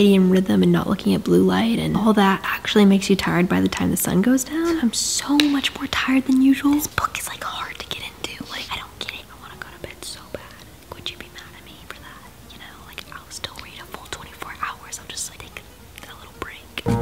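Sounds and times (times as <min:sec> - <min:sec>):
woman whispering: 0:04.5 - 0:05.0, 0:06.4 - 0:16.9.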